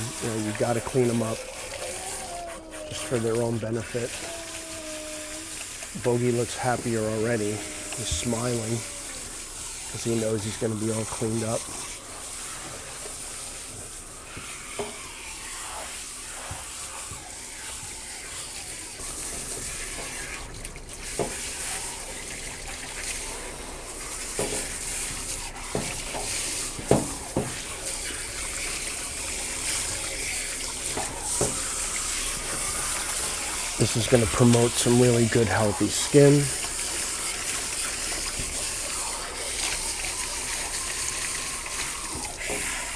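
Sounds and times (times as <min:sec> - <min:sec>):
water spraying and splashing: 0:00.0 - 0:42.9.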